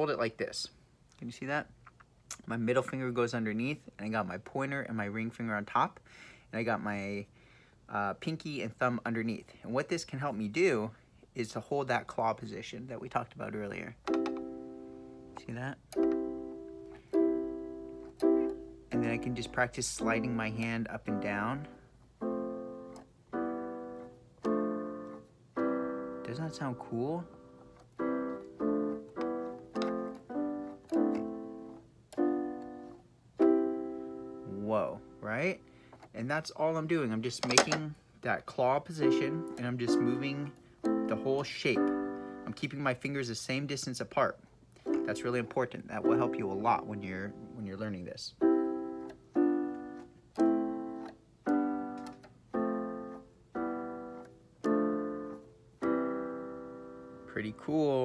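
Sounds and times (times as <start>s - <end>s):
electronic keyboard piano chords: 13.4s - 38.0s, 38.7s - 43.2s, 44.8s - 58.0s.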